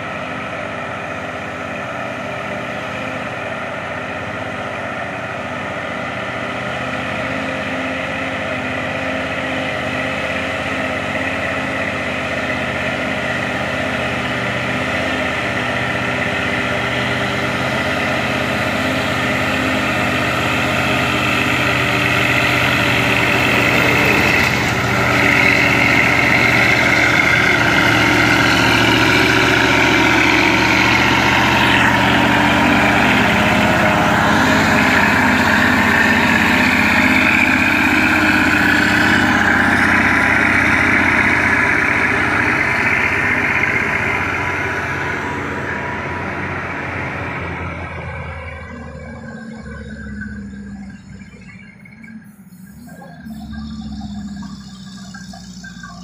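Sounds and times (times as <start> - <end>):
diesel truck engine labouring: 0.0 - 56.0.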